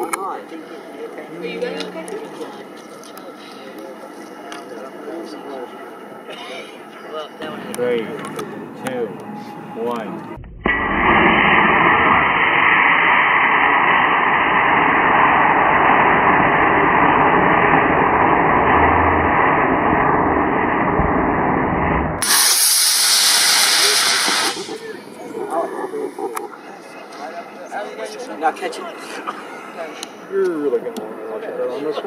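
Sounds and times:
bright hiss: 22.2s - 25.0s
rocket motor rushing hiss: 22.2s - 25.0s.

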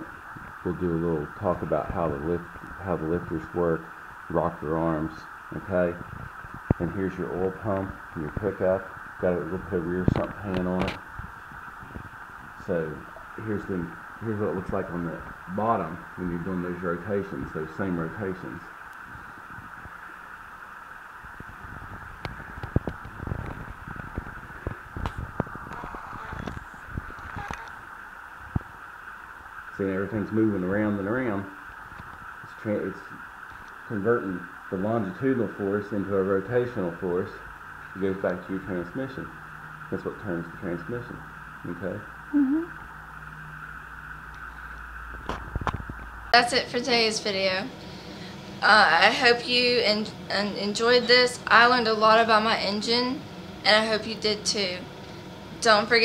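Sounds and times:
steady background hiss: 0.0s - 56.0s.

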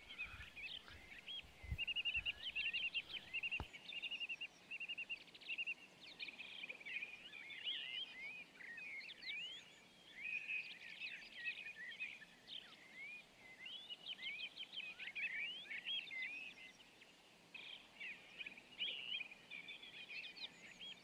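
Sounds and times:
songbirds chirping and whistling: 0.0s - 16.8s.

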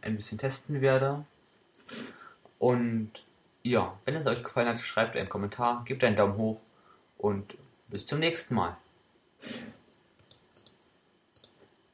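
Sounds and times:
short exhale: 1.9s - 2.4s, 9.4s - 9.8s
computer mouse clicks: 10.2s - 10.8s, 11.4s - 11.6s.

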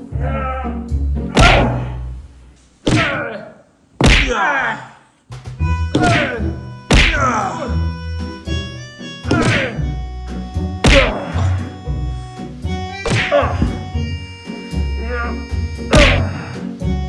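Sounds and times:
background music with bass line: 0.0s - 2.2s, 5.3s - 17.0s
loud whacks with falling pitch: 6.0s - 7.2s, 13.0s - 13.6s.

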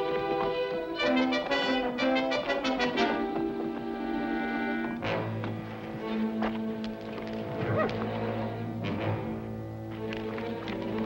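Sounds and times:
orchestral score led by brass: 0.0s - 6.7s, 7.3s - 10.8s.

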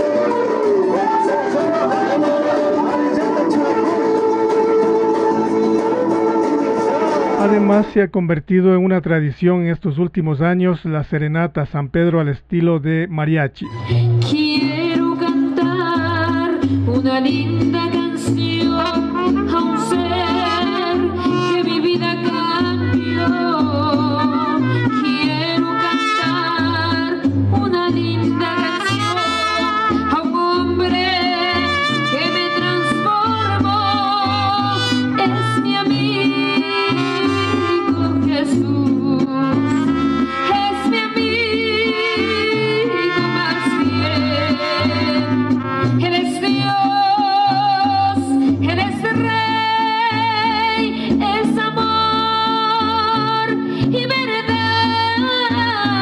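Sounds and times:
woman singing: 0.0s - 6.1s, 14.2s - 56.0s
strummed guitar: 0.0s - 8.0s, 13.6s - 56.0s
bass guitar line: 0.0s - 56.0s.

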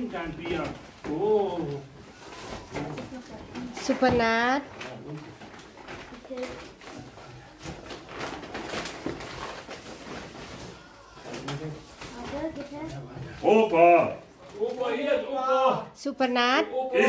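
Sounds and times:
gift packaging crinkling: 0.0s - 3.8s, 4.4s - 13.0s.

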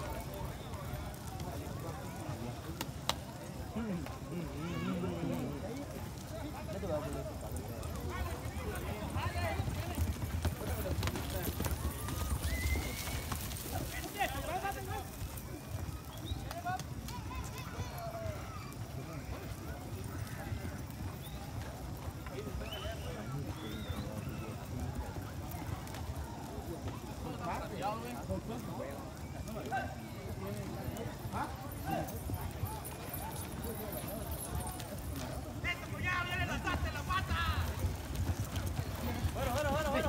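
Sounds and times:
crowd voices and shouts: 0.0s - 40.0s
horse hoofbeats on dirt: 0.0s - 40.0s.

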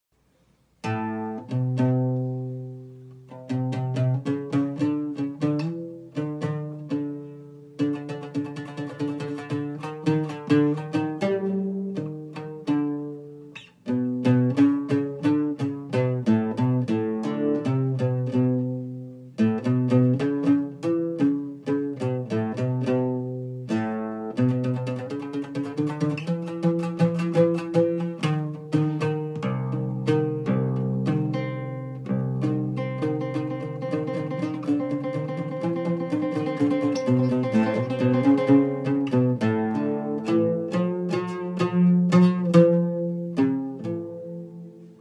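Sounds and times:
oud plucked notes: 0.4s - 45.0s.

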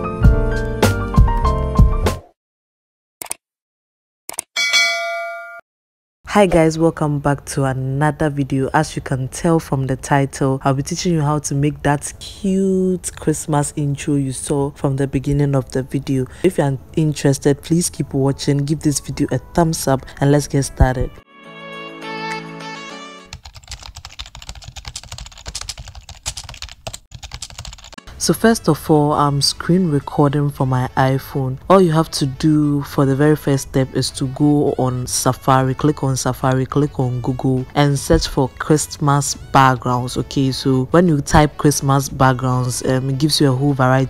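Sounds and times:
music: 0.0s - 2.4s, 10.8s - 23.4s, 28.0s - 44.0s
notification bell ding: 4.6s - 5.6s
rapid irregular clicking and tapping: 23.4s - 28.0s.

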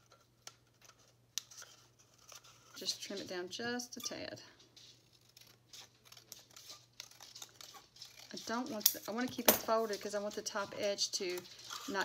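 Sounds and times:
scissors snipping paper: 5.0s - 12.0s.

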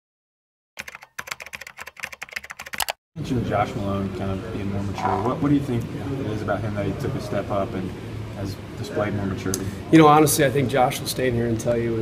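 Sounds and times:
keyboard typing: 0.8s - 3.0s.

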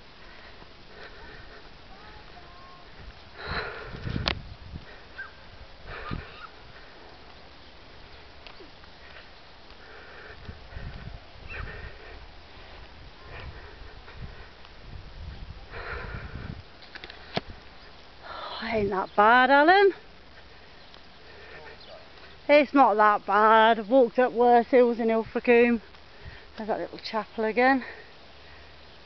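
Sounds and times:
person breathing hard: 0.2s - 2.2s, 2.9s - 4.2s, 4.8s - 7.1s, 9.0s - 14.6s, 15.7s - 16.6s, 20.3s - 22.0s, 26.1s - 26.6s.

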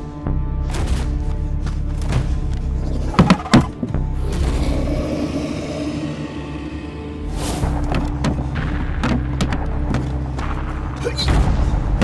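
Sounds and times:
low steady drone: 4.0s - 9.0s
rushing swell: 4.3s - 7.8s.

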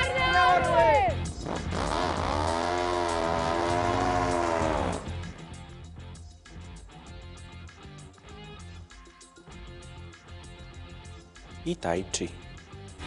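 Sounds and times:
motorcycles passing by: 1.4s - 5.2s.

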